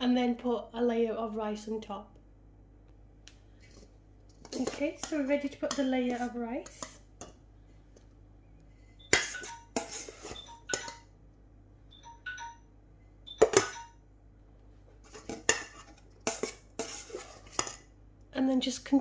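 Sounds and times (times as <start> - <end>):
metal spatula scraping aluminium pot: 4.5 - 7.0, 9.1 - 10.9, 15.1 - 17.8.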